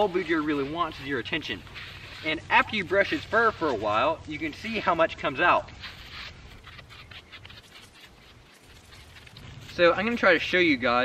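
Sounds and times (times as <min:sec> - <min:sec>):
brush scratching through dog fur: 0:00.0 - 0:11.0.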